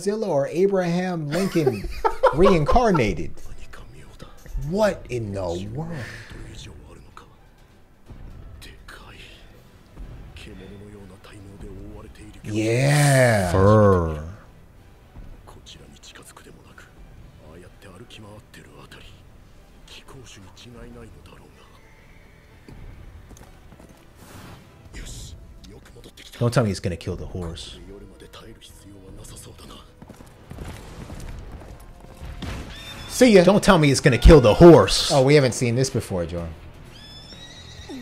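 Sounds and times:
background music: 0:00.0 - 0:38.0
person speaking: 0:01.3 - 0:03.4, 0:12.5 - 0:14.4
horse whinnying: 0:12.5 - 0:14.4, 0:21.7 - 0:23.4, 0:36.9 - 0:38.0
horse hoofbeats: 0:22.6 - 0:24.1, 0:29.2 - 0:32.3.

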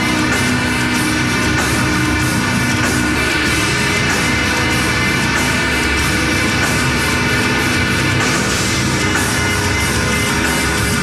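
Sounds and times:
bass guitar: 0:00.0 - 0:11.0
distorted guitars: 0:00.0 - 0:11.0
drums: 0:00.0 - 0:11.0.

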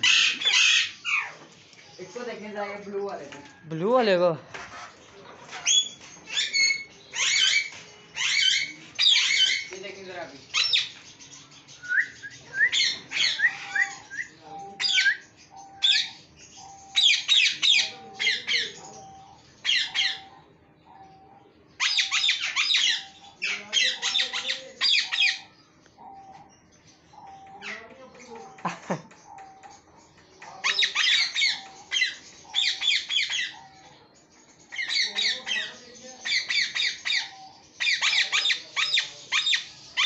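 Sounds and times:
parrots squawking: 0:00.0 - 0:01.5, 0:05.6 - 0:09.8, 0:12.7 - 0:26.4, 0:30.6 - 0:34.0, 0:34.7 - 0:40.0.

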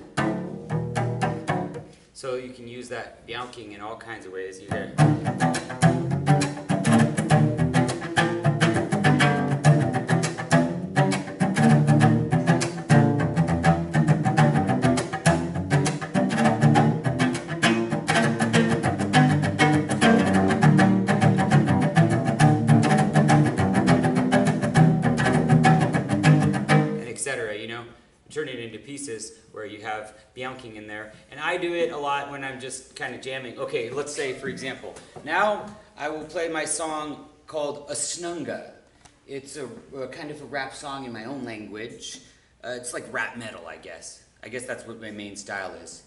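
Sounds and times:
bowed cello playing: 0:00.0 - 0:02.0, 0:04.7 - 0:27.2.

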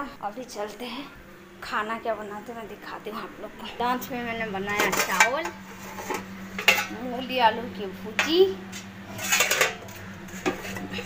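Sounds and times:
pot lids clattering: 0:04.8 - 0:07.0, 0:08.2 - 0:11.0
metal lid clink: 0:09.2 - 0:09.9.

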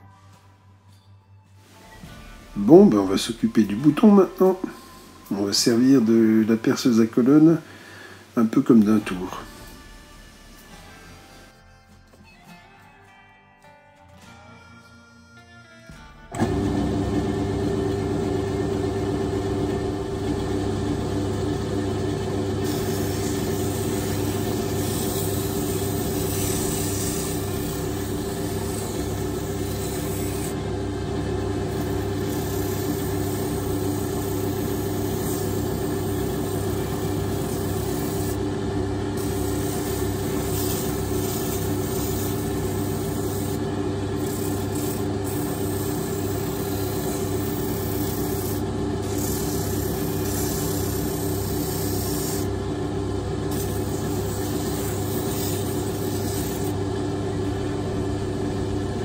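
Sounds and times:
drill press motor running: 0:16.3 - 0:59.0.

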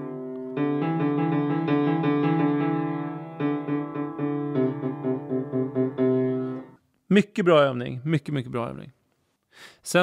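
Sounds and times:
upright piano finger exercise: 0:00.0 - 0:06.8.

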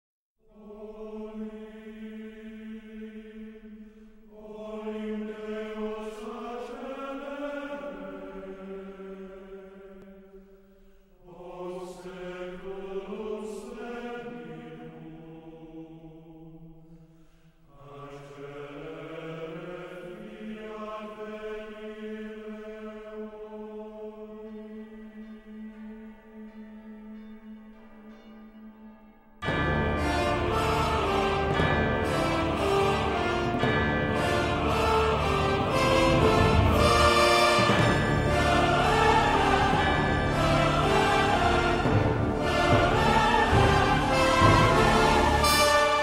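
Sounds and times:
choir chanting long notes: 0:00.4 - 0:46.0.

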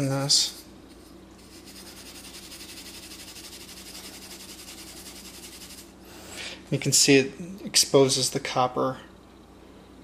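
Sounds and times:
steel wool scrubbing circuit board: 0:00.4 - 0:05.9.

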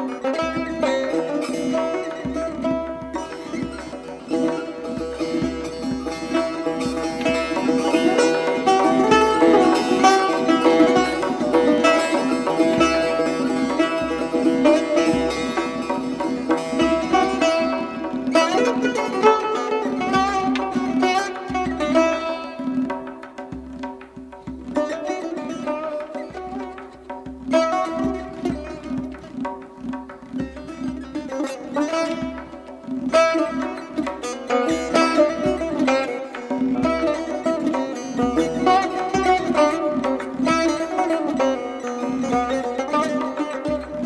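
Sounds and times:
plucked drone note: 0:00.0 - 0:44.0
rapid plucked-string runs: 0:00.0 - 0:44.0.

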